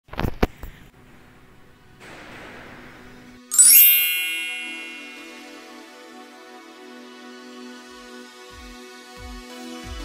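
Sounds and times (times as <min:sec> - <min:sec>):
soft electronic music: 0:03.5 - 0:05.8
bright bell-like chime: 0:03.5 - 0:05.9.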